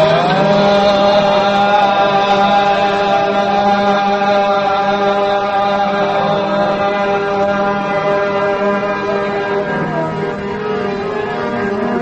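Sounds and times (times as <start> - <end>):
wordless gliding vocal: 0.0 - 10.4
harmonium drone: 0.0 - 12.0.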